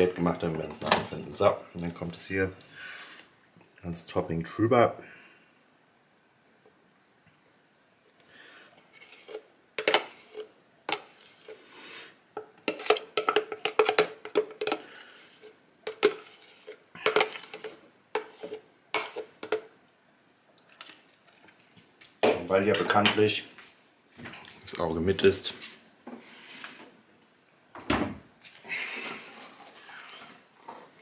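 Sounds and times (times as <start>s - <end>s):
spoon scraping plastic cup: 8.8s - 11.7s, 12.6s - 19.6s.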